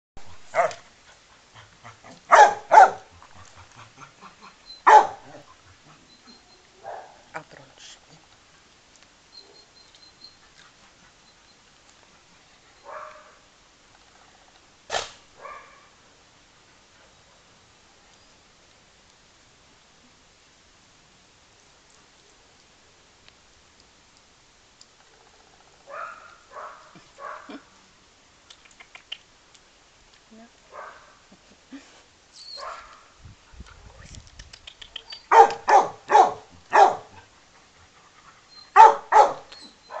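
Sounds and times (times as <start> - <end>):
dog barking: 0.5 - 0.8, 2.3 - 3.1, 4.8 - 5.4, 6.8 - 7.2, 12.9 - 13.4, 14.9 - 15.9, 25.9 - 27.6, 30.7 - 31.2, 32.6 - 33.0, 35.3 - 37.2, 38.7 - 40.0.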